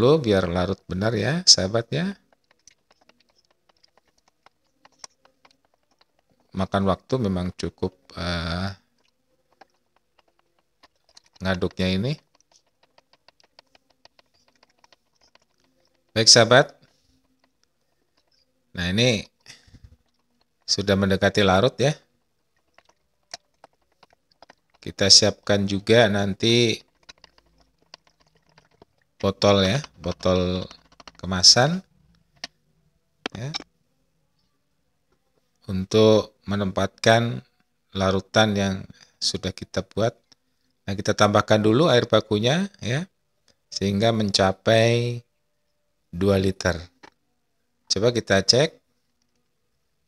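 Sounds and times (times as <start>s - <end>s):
wooden stick tapping plastic jug: 1.7s - 31.8s.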